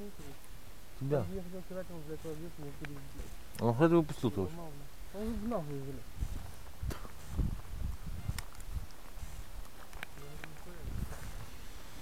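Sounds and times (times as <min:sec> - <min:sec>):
sharp clicks: 0:08.2 - 0:10.7.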